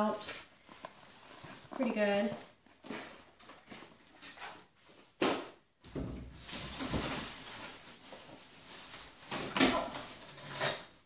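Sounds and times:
packaging rustling: 0.5s - 4.6s.

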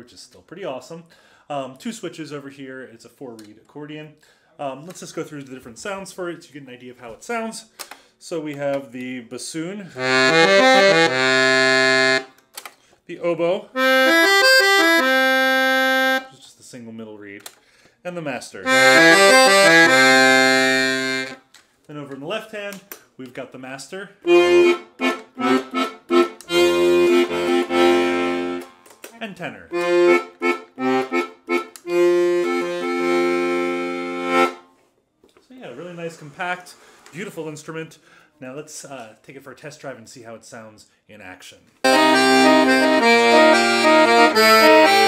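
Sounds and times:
accordion notes: 10.0s - 12.3s, 13.8s - 16.3s, 18.7s - 21.4s, 24.2s - 28.9s, 29.7s - 34.7s, 41.9s - 45.0s.

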